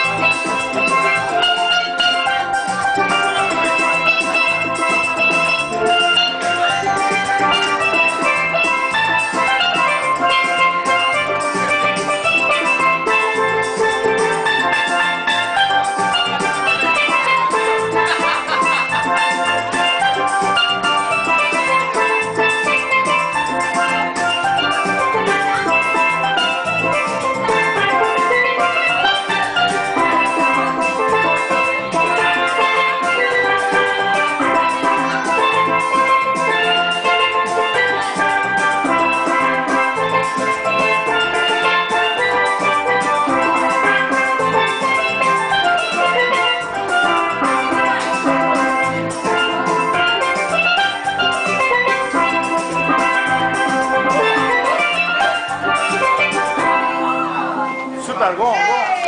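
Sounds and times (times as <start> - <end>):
steady drum beat: 0.0 - 59.0
steelpan notes: 0.0 - 59.0.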